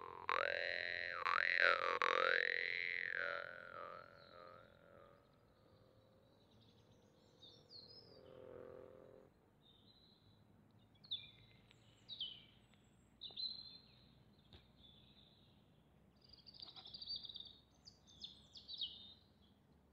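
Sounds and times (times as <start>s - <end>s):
jaw harp note: 0.0s - 5.0s
bird chirps: 0.0s - 8.6s, 16.2s - 19.3s.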